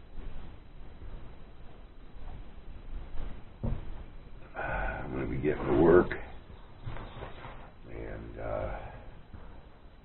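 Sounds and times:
man saying uh: 4.9 - 6.3.

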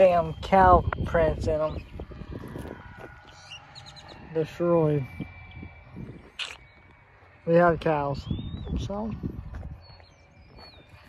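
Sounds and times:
faint steady high tone: 0.0 - 11.0
wind rumble on microphone: 0.0 - 11.0.

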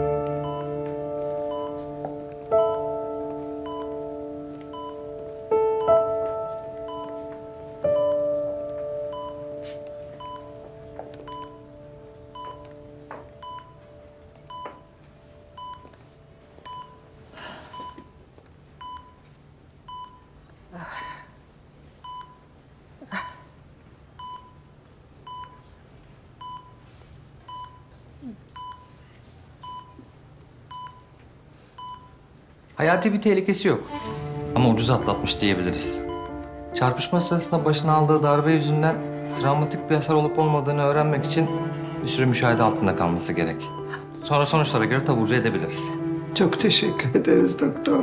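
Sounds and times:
held music notes: 0.0 - 17.5, 33.0 - 48.0
patient monitor beeping: 0.0 - 20.4, 22.0 - 22.6, 24.1 - 25.7, 26.4 - 29.0, 29.6 - 33.2, 33.9 - 48.0.

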